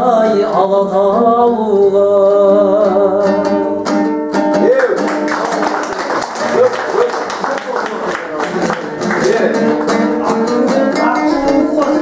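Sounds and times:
man singing: 0.0 - 4.0, 8.9 - 12.0
applause: 4.8 - 10.2
strummed two-string lute: 8.9 - 12.0.

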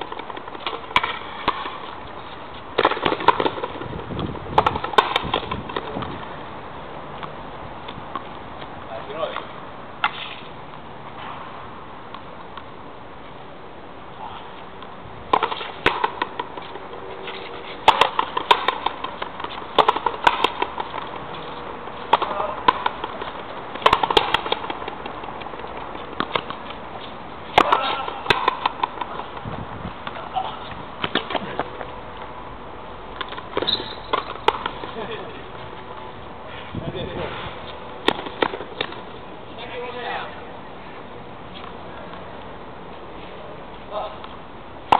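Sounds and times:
racket hitting ball: 0.0 - 2.0, 2.7 - 3.8, 4.5 - 6.3, 10.0 - 10.5, 14.8 - 31.9, 33.2 - 35.3, 37.2 - 39.1.

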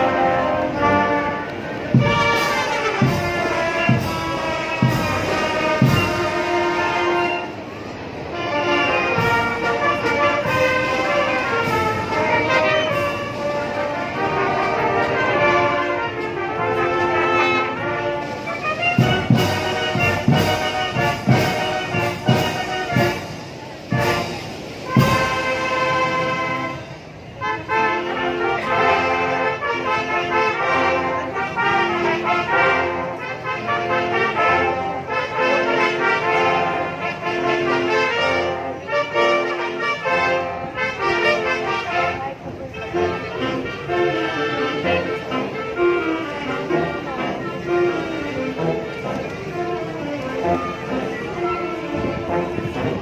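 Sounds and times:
marching band playing: 0.0 - 53.0.

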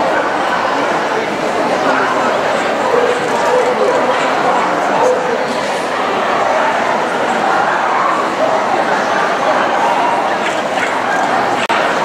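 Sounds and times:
crowd chatter: 0.0 - 12.0
dogs barking: 2.7 - 5.4.

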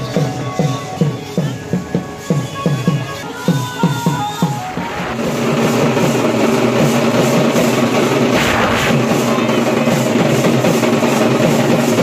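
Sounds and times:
snare drums drumming fast roll: 5.1 - 12.0.

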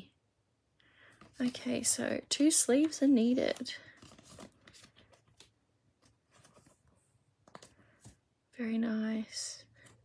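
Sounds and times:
trading cards rustling and clicking: 2.4 - 8.2.

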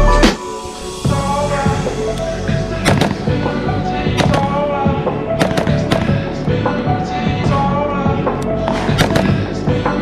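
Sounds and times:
song with steady beat: 0.0 - 10.0
sharp hits: 2.6 - 6.6.

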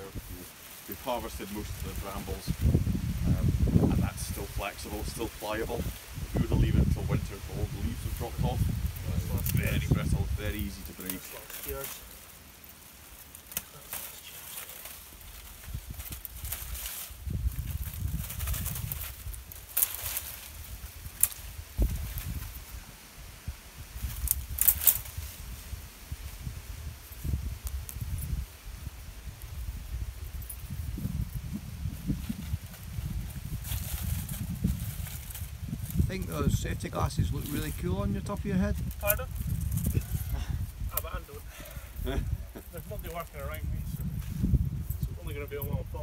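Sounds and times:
brambles rustling and crackling: 0.0 - 46.0.

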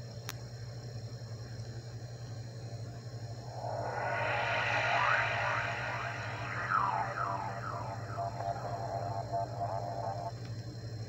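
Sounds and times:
steady low hum: 3.0 - 10.3
synthesized falling swoops: 3.4 - 10.3
held synth tone: 3.5 - 10.3.

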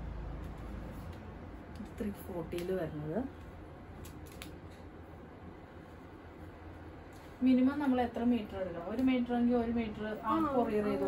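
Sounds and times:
low room hum: 0.0 - 11.0
woman speaking: 1.8 - 3.4, 7.4 - 11.0.

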